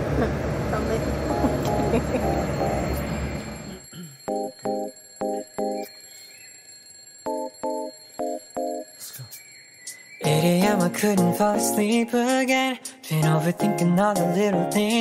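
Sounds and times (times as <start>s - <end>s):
bus cabin rumble: 0.0s - 3.8s
alarm clock beeping: 0.8s - 11.1s.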